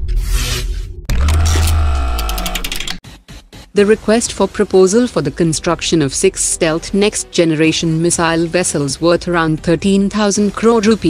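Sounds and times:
glitchy ticks: 0:01.1 - 0:03.0.

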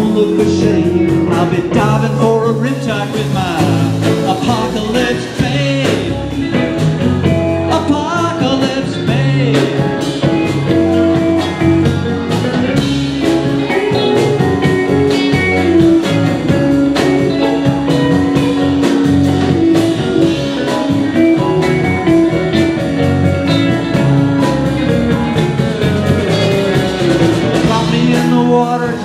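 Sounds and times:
bass: 0:00.0 - 0:29.0
drums: 0:00.0 - 0:29.0
electric guitar lead with bent notes: 0:00.0 - 0:29.0
keyboards: 0:00.0 - 0:29.0.

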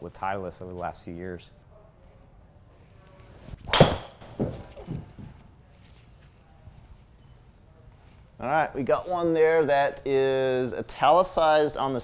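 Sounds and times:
soft thuds: 0:03.6 - 0:05.5
golf ball struck sharp crack: 0:03.7 - 0:04.3.

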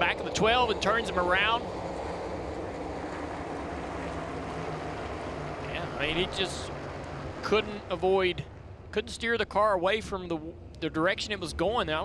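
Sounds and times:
race cars droning: 0:00.0 - 0:12.0.

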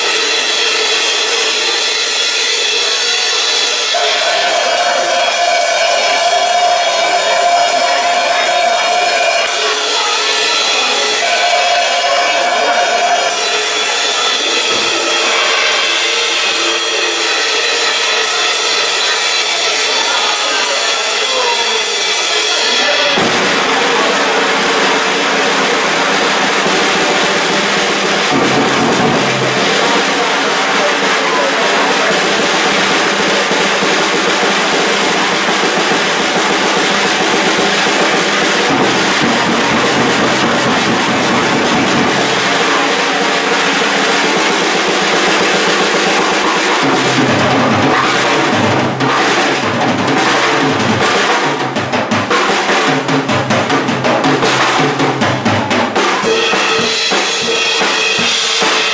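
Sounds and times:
rock band playing: 0:00.0 - 0:58.9
bass drum hits: 0:23.2 - 0:24.5.

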